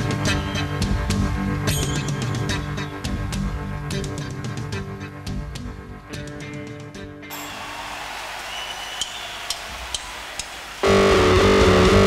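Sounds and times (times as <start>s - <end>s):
rock band with electric guitar: 0.0s - 7.8s, 9.9s - 12.0s.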